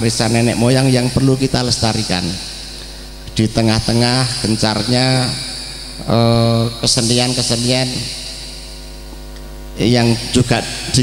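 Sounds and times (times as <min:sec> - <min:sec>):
man speaking into a microphone: 0:00.0 - 0:08.8, 0:09.8 - 0:11.0
electrical mains hum: 0:00.0 - 0:11.0.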